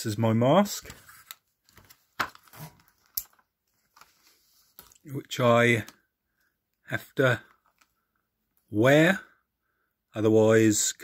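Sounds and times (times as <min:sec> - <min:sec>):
mask handling clicks and rustles: 0:00.8 - 0:05.1, 0:07.4 - 0:08.7.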